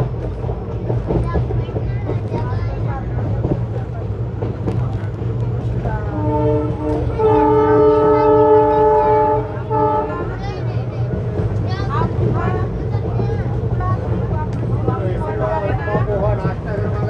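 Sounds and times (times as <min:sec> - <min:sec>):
train wheels rumbling on track: 0:00.0 - 0:17.0
locomotive horn: 0:06.0 - 0:10.4.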